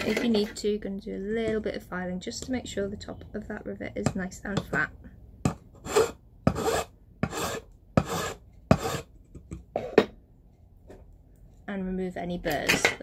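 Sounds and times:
hand file rasping on metal: 5.8s - 9.1s.

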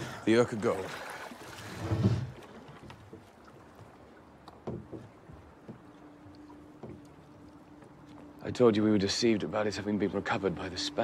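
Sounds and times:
faint water: 0.0s - 11.0s
oars creaking and knocking: 0.0s - 11.0s.

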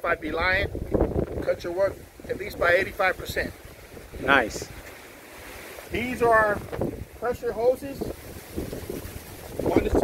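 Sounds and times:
wind buffeting microphone: 0.0s - 10.0s
man speaking: 5.9s - 8.2s.

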